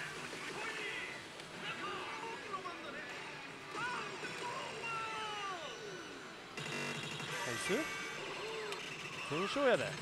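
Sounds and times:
din of gaming parlour: 0.0s - 10.0s.

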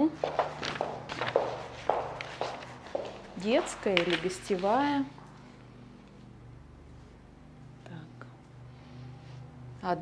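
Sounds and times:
footsteps on carpet: 0.2s - 3.7s.

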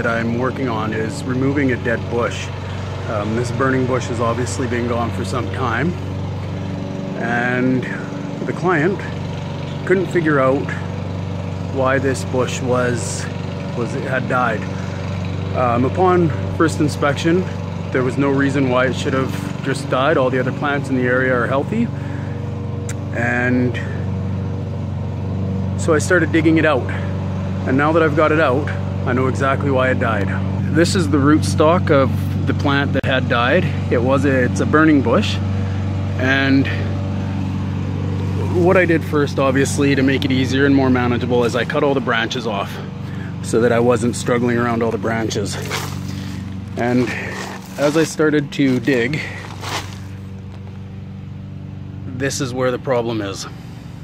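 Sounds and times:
man speaking: 0.0s - 6.0s, 38.3s - 46.1s, 46.8s - 49.6s
engine idling hum: 0.0s - 54.0s.

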